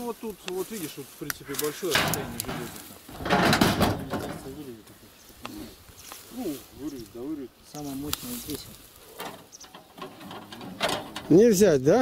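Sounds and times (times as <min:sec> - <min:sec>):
light rustling: 0:00.0 - 0:11.6.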